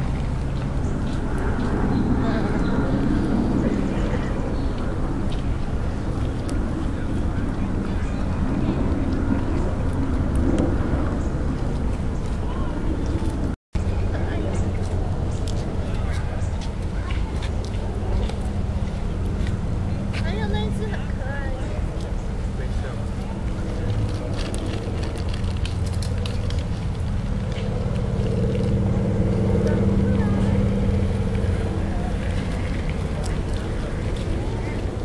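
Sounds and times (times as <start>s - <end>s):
low rumbling background noise: 0.0s - 35.0s.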